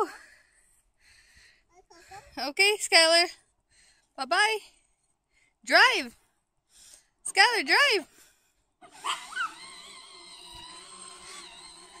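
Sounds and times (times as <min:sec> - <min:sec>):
toy car motor whine: 0:08.8 - 0:12.0.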